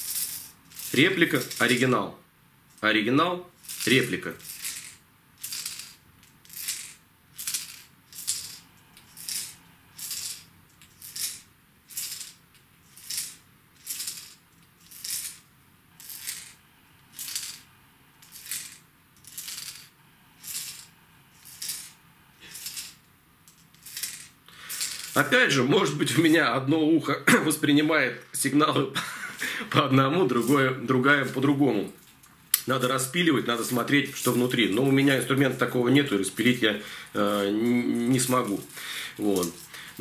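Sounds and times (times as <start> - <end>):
fishing lure rattle clatter: 0.0 - 1.8, 3.6 - 17.6, 18.2 - 25.3, 38.0 - 40.0.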